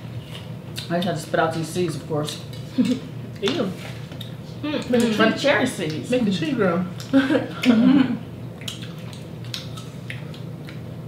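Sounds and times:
people chewing juicy fruit: 0.2s - 11.0s
wet mouth clicks and smacks: 8.6s - 10.8s.

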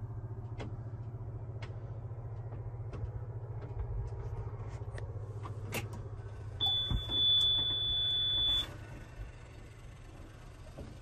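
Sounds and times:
diesel engine idling: 0.0s - 11.0s
high electronic beep: 6.6s - 8.7s.

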